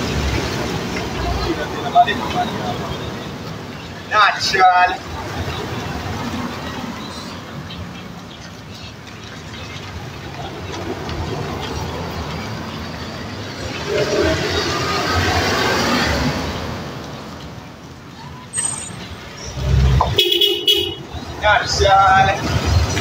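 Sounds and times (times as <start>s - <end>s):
car passing by: 9.1s - 17.4s
short car horn toot: 20.2s - 21.0s.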